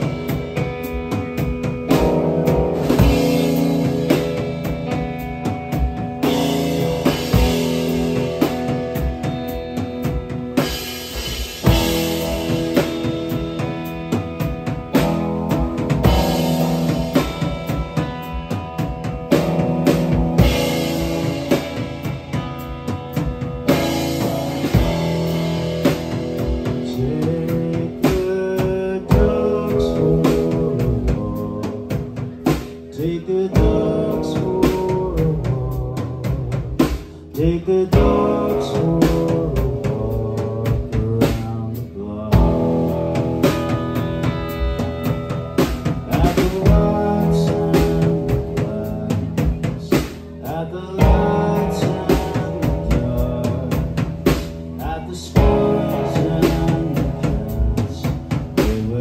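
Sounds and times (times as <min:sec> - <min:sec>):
drum kit playing: 0:00.0 - 0:59.0
electric guitar: 0:00.0 - 0:59.0.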